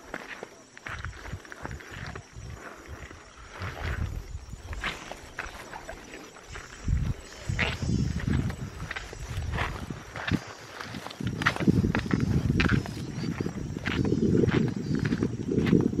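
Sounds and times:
footsteps through grass: 0.1s - 15.8s
wind buffeting microphone: 1.0s - 16.0s.

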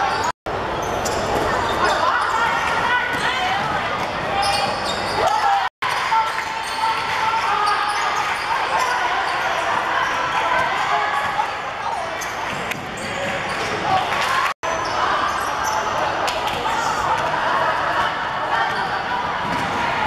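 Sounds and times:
voices echoing in sports hall: 0.0s - 20.0s.

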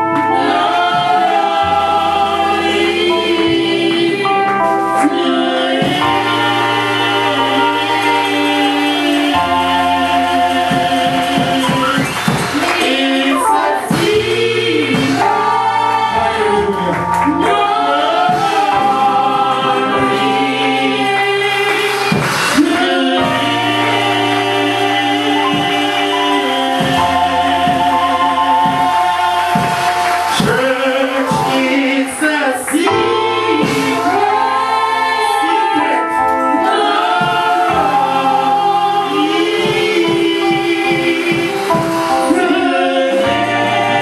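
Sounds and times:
choir singing gospel song: 0.0s - 44.0s.

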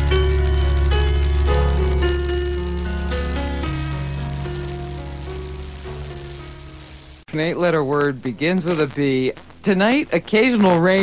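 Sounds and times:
held chords over bass: 0.0s - 7.2s
hiss: 0.0s - 7.3s.

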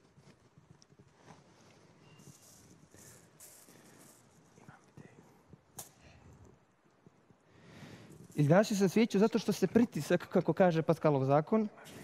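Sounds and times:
faint handling noise: 0.0s - 9.5s.

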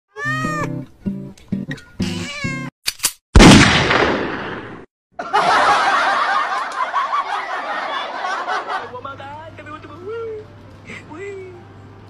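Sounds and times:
cat meowing: 0.1s - 0.8s, 1.8s - 2.7s
music: 0.2s - 2.7s, 9.4s - 12.0s.

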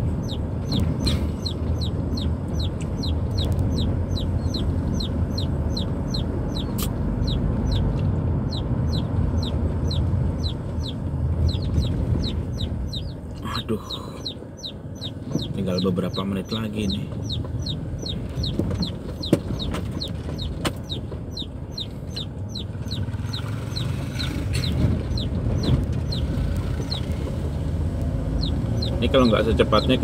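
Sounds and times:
car engine and road rumble: 0.0s - 30.0s
chicken peeping: 0.2s - 27.2s, 28.4s - 30.0s.

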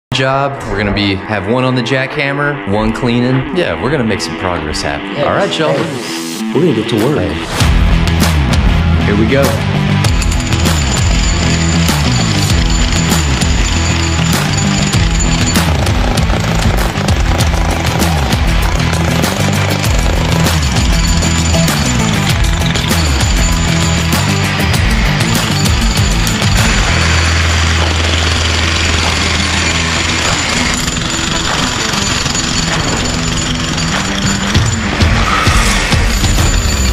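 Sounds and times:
music playing: 0.1s - 36.9s
electric jackhammer hammering concrete: 10.0s - 36.9s.

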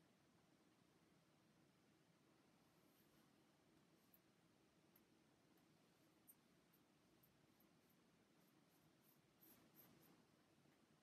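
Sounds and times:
paintbrush scratching on wood: 6.0s - 10.4s.

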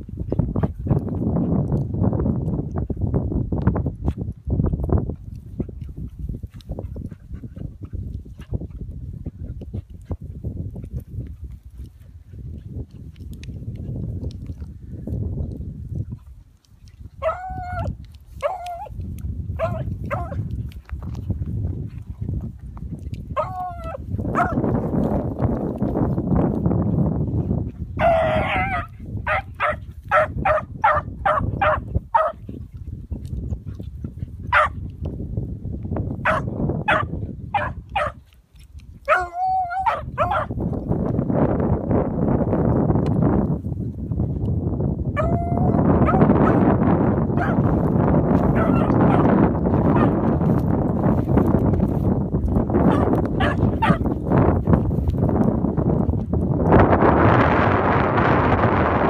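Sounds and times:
wind on microphone: 0.0s - 59.0s
dogs baying: 17.2s - 19.0s, 19.6s - 20.4s, 23.3s - 24.8s, 27.9s - 32.4s, 39.0s - 40.6s, 45.2s - 46.6s, 47.3s - 47.7s, 48.4s - 50.3s, 52.8s - 54.1s.

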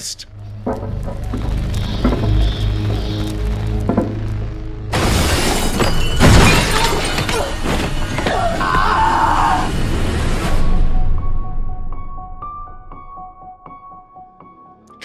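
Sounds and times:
low droning score: 0.0s - 5.7s
crashing hits and effects: 0.7s - 8.0s.

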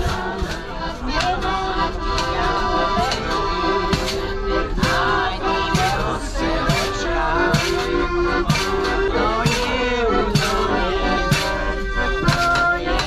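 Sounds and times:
accordion playing folk tune: 0.0s - 13.0s
sharp beat: 3.9s - 12.7s.

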